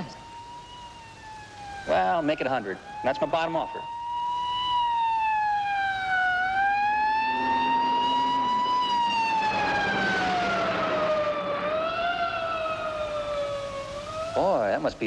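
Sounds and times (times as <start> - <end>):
emergency vehicle siren wailing: 0.0 - 15.0.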